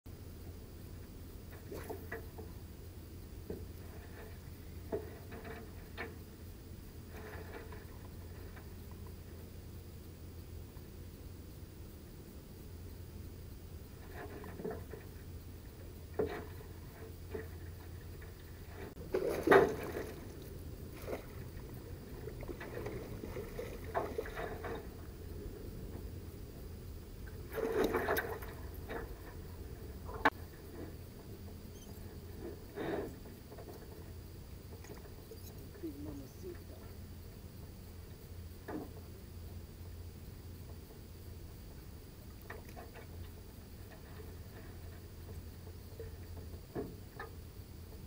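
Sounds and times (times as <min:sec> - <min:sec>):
steady low hum: 0:00.1 - 0:48.0
water splashing: 0:18.9 - 0:25.1.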